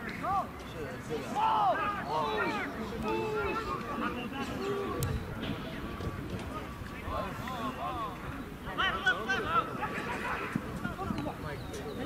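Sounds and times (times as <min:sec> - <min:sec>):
players shouting: 0:01.1 - 0:05.2.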